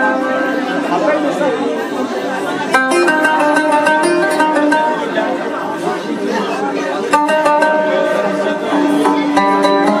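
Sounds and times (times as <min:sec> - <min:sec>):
audience chatter: 0:00.0 - 0:10.0
plucked oud notes: 0:00.0 - 0:10.0.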